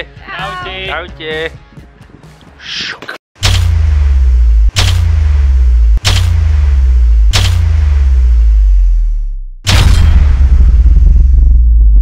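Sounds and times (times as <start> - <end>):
sharp cinematic cracks: 3.4 - 8.6, 9.6 - 12.0
deep bass rumble: 3.4 - 12.0.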